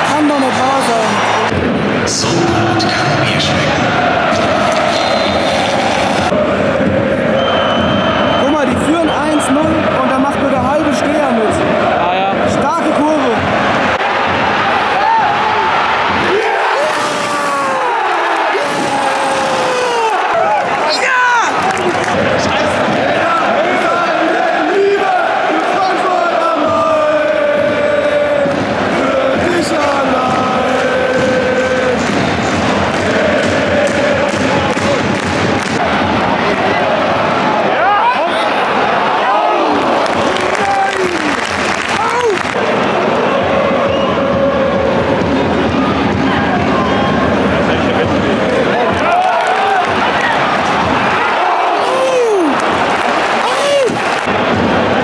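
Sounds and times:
crowd cheering and shouting: 0.0 - 55.0
fans singing and chanting: 0.0 - 55.0.

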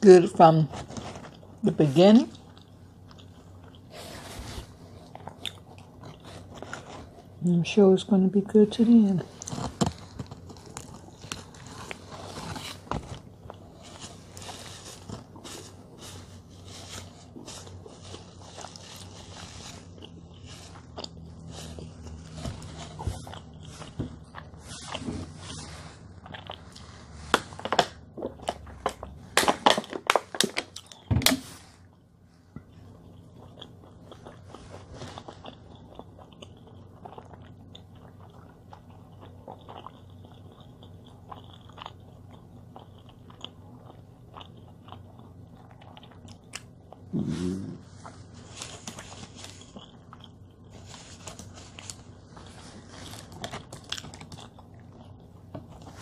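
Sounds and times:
person chewing: 2.3 - 7.4, 9.3 - 31.1, 31.8 - 56.0
crinkly paper wrapper: 9.2 - 31.7, 47.9 - 50.0, 50.7 - 54.6.

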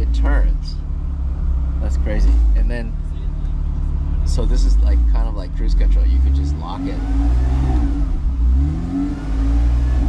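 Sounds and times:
car engine revving: 0.0 - 10.0.

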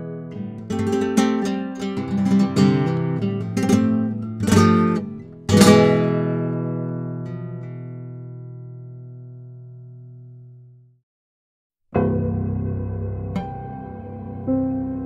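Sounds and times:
fingerpicked classical guitar: 0.0 - 10.7.

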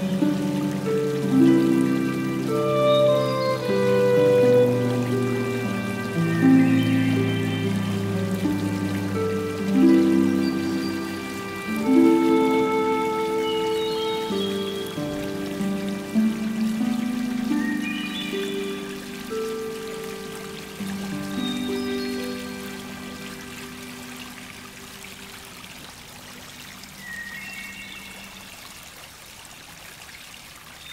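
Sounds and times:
gentle music of slow held chords: 0.0 - 28.3
water trickling in a pond: 0.0 - 30.9.

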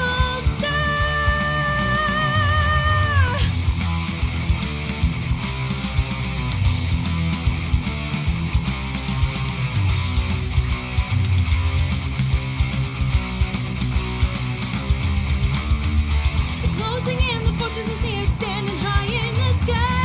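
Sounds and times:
woman singing high belted note: 0.0 - 3.5
heavy metal instrumental: 0.0 - 20.0.

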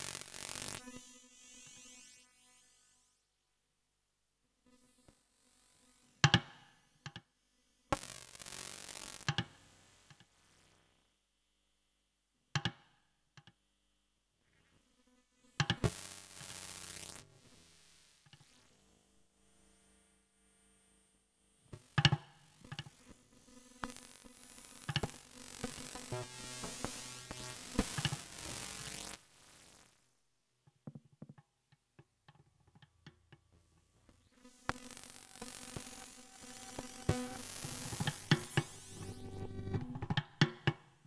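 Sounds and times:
experimental electronic music: 26.1 - 29.0.

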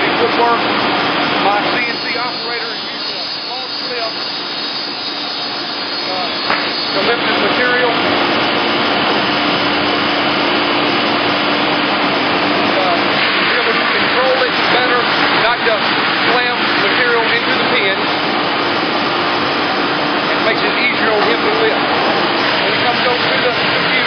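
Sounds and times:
constant machine hum: 0.0 - 24.0
industrial vacuum machinery rushing: 0.0 - 24.0.

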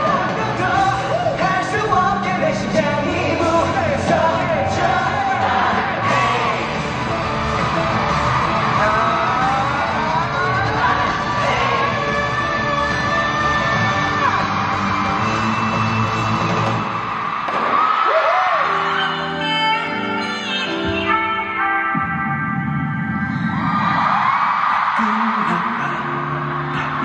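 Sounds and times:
live pop concert music: 0.0 - 27.0
crowd yelling: 3.7 - 19.4, 23.3 - 27.0.

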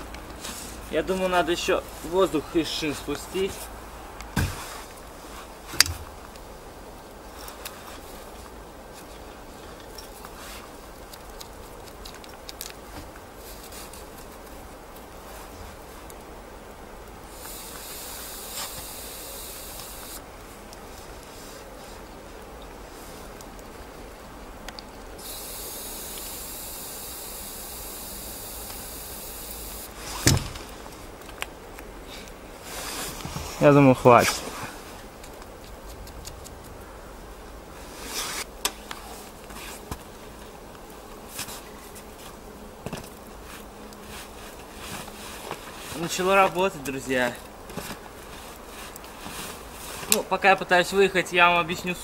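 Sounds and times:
air hissing out of tyre valve: 17.3 - 20.2, 25.2 - 30.3.

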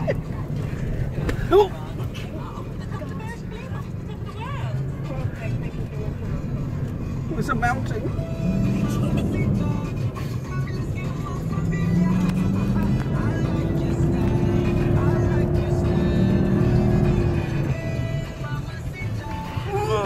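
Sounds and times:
voices: 0.0 - 9.9
low engine and ride rumble: 0.0 - 20.0
music: 0.0 - 20.0.

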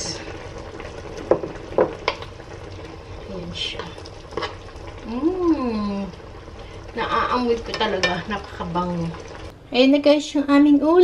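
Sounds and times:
stew bubbling in pan: 0.0 - 9.5.

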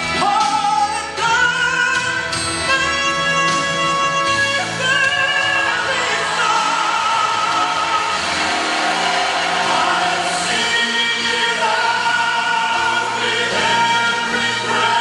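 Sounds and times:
vocal group singing in harmony: 3.2 - 15.0.

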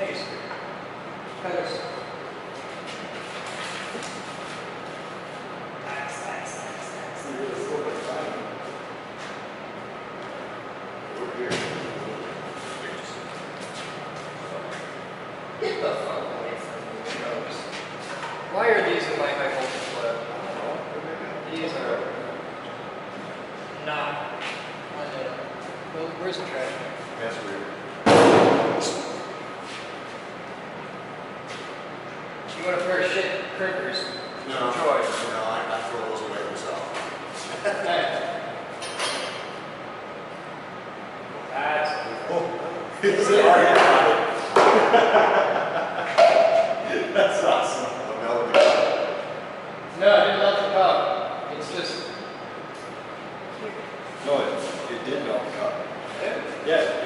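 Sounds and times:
loud slam: 28.0 - 29.2.

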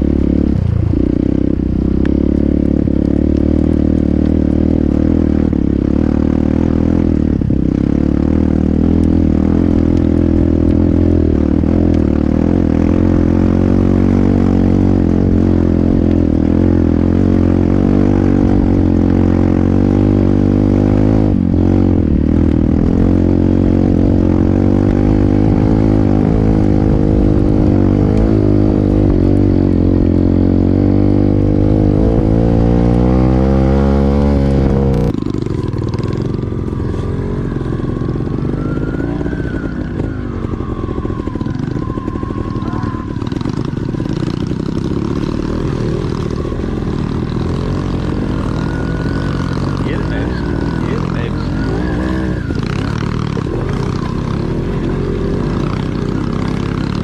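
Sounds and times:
dirt bike engine revving: 0.0 - 57.0.

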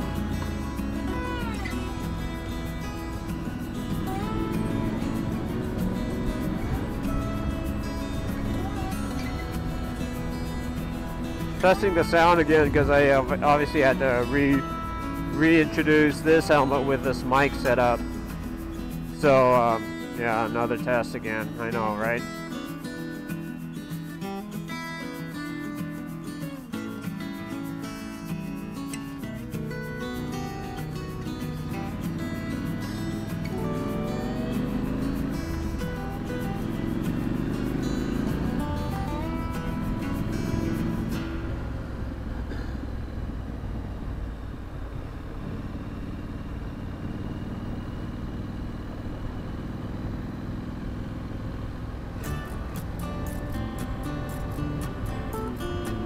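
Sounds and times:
motorcycle engine running: 0.0 - 24.5, 25.1 - 56.0
music: 0.0 - 43.4, 52.1 - 56.0.

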